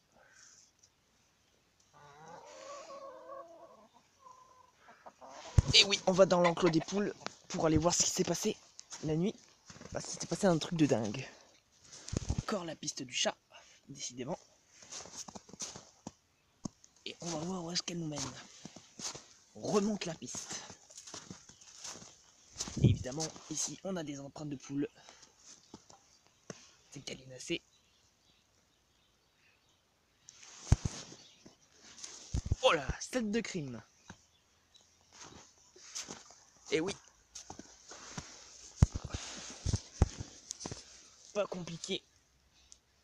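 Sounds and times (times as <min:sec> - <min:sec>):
chicken calling: 0:01.9 - 0:07.4
boots crunching through snow: 0:05.6 - 0:10.6, 0:14.8 - 0:16.0, 0:17.1 - 0:23.6, 0:30.5 - 0:31.2, 0:35.2 - 0:36.3, 0:37.3 - 0:41.1.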